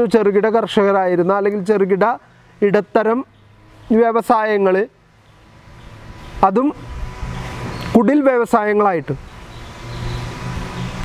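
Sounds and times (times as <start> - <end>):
low steady engine hum: 0.0 - 11.0.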